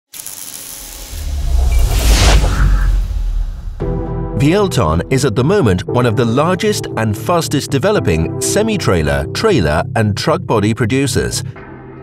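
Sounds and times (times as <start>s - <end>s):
hiss: 0.1s - 3.1s
deep rumble: 1.0s - 4.8s.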